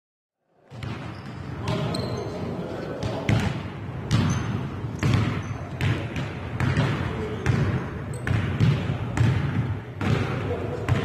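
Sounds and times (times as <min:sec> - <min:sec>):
players' voices: 0:00.8 - 0:11.0
shoe squeaks: 0:01.0 - 0:02.6, 0:04.2 - 0:04.8, 0:05.4 - 0:05.8
basketball bouncing on hardwood: 0:05.0 - 0:10.3.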